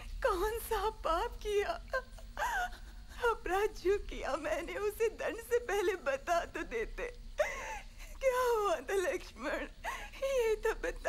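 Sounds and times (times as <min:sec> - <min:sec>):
woman crying and wailing: 0:00.5 - 0:11.0.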